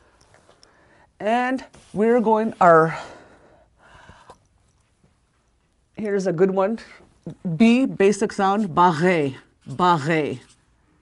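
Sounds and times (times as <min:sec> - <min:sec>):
woman breathing faintly: 0:00.0 - 0:01.2, 0:02.9 - 0:04.9
soft rustle: 0:00.0 - 0:03.3, 0:04.0 - 0:07.5, 0:08.2 - 0:11.0.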